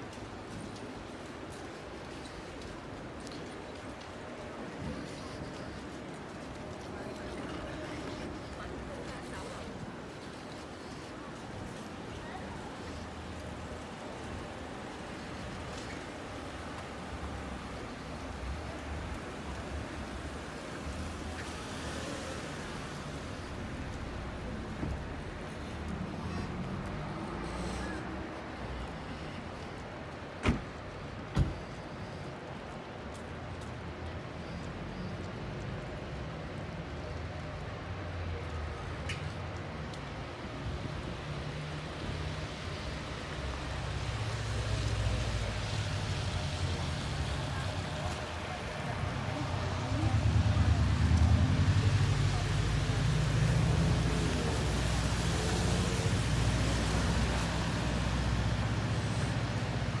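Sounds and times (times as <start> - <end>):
low rumble of traffic: 0.0 - 60.0
street noise hum: 0.0 - 60.0.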